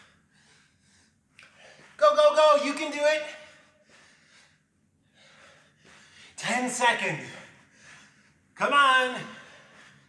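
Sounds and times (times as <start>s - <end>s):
man breathing faintly: 0.0s - 2.0s, 3.4s - 6.4s, 7.2s - 8.6s, 9.3s - 10.0s.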